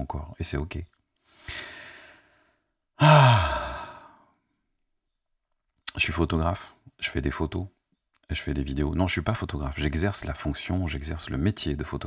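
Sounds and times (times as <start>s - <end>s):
man breathing close to microphone: 1.2s - 4.4s.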